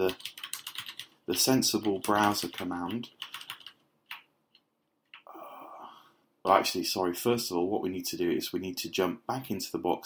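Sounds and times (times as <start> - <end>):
typing on computer keyboard: 0.0 - 5.3.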